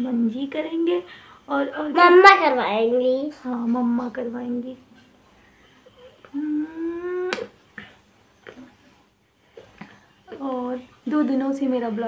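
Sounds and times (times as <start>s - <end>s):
hummed mmm: 5.9s - 7.9s
lip smack kiss: 7.2s - 8.6s.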